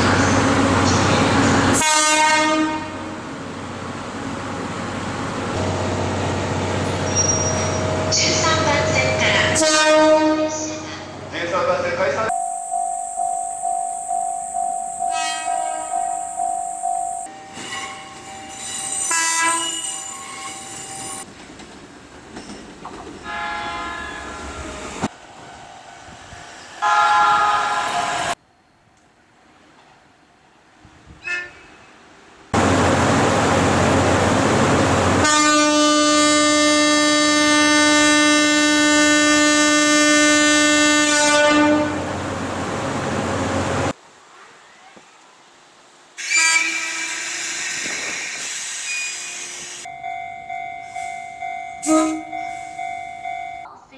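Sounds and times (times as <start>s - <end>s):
train horn blasts: 1.7s - 3.2s, 9.5s - 10.8s, 15.1s - 16.4s, 19.0s - 20.0s, 23.2s - 24.8s, 26.8s - 28.4s, 31.2s - 31.8s, 35.2s - 42.1s, 46.2s - 47.2s, 51.8s - 52.8s.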